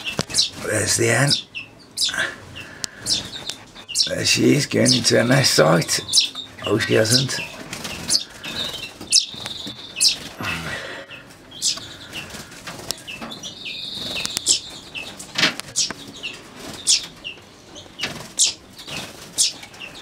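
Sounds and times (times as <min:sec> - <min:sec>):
finch trills: 0:00.0 - 0:20.0
finches chirping: 0:00.0 - 0:20.0.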